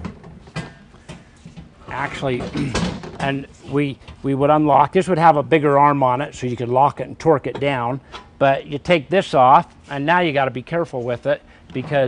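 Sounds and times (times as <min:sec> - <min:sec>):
metal cart knocks and clunks: 0:02.0 - 0:03.4.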